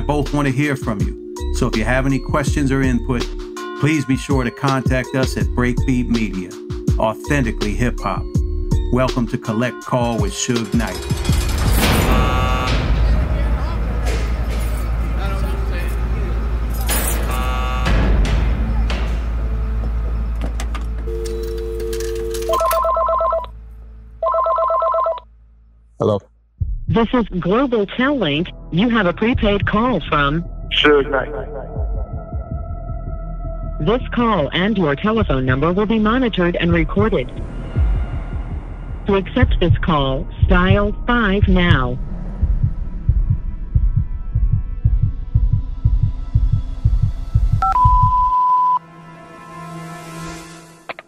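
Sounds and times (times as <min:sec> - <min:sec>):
phone ringing electronic trill: 0:12.0 - 0:12.8, 0:17.3 - 0:18.0, 0:21.1 - 0:23.5, 0:24.2 - 0:25.2
two-note dial tone: 0:12.2 - 0:12.8, 0:17.2 - 0:18.0, 0:21.0 - 0:23.5, 0:24.2 - 0:25.2, 0:47.6 - 0:48.8
telephone line clicks: 0:20.4 - 0:23.5
heartbeat double thumps: 0:26.6 - 0:27.6, 0:29.2 - 0:30.2, 0:31.7 - 0:33.3, 0:35.2 - 0:36.0, 0:36.6 - 0:48.4
low drone: 0:36.0 - 0:47.5.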